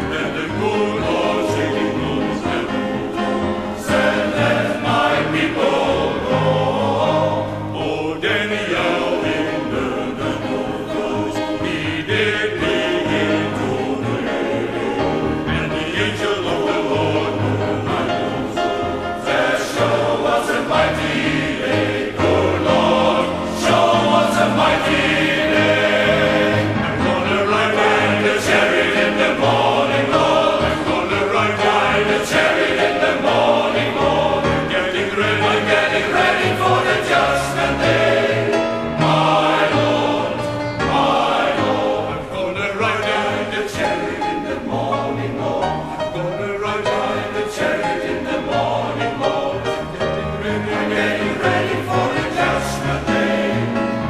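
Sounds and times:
men's choir singing: 0.0 - 54.0
piano accompaniment: 0.0 - 54.0.

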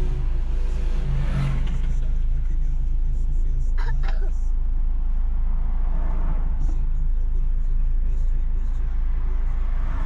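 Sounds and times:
car engine idling: 0.0 - 9.8.

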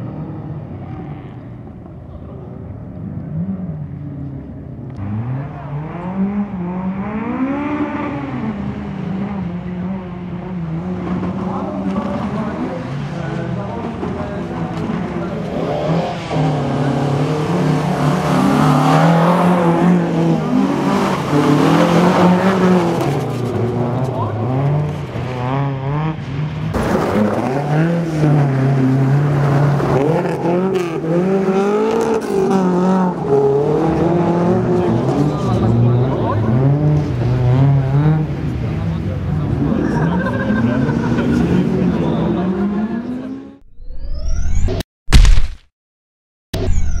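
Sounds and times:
rally car engines revving: 0.0 - 43.6.

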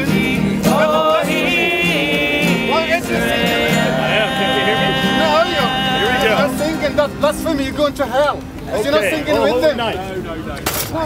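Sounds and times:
people talking over each other: 0.0 - 11.0.

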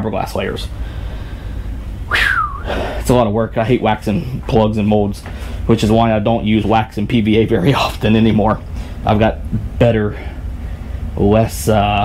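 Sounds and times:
man breathy whistled whew: 2.1 - 3.0.

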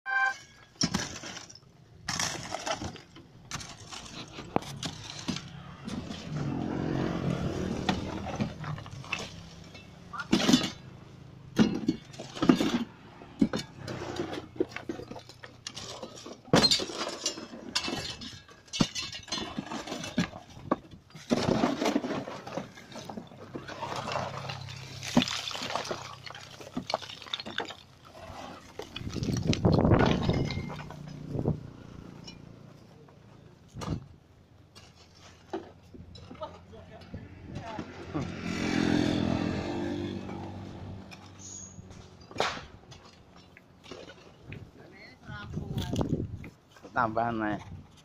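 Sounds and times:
rubble clattering onto a pile: 14.7 - 31.2.

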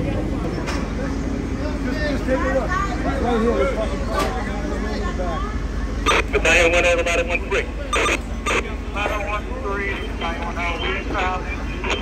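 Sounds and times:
indistinct men's voices: 6.1 - 12.0.

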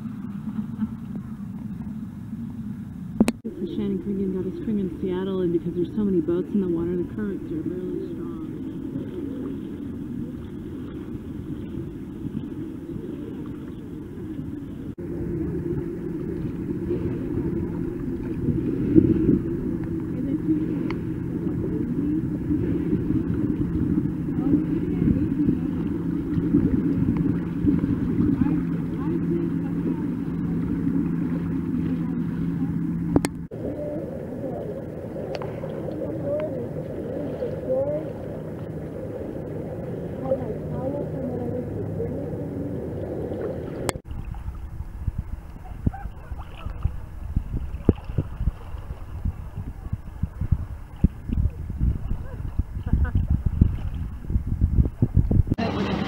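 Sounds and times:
motorboat engine hum: 0.0 - 56.0
water sloshing and lapping: 0.0 - 56.0.

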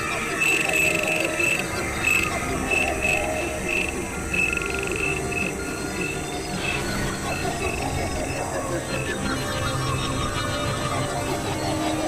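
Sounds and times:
layered processed music: 0.0 - 12.0.

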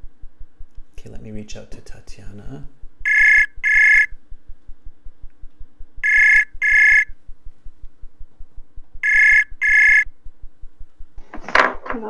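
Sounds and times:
fast low ticking: 0.0 - 11.2
ringback double beeps: 3.0 - 4.1, 6.0 - 7.1, 9.0 - 10.0.

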